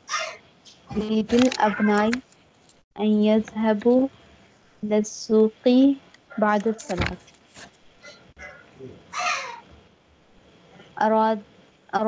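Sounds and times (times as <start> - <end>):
harsh animal call: 0.0 - 0.4, 1.6 - 2.1, 8.0 - 9.7.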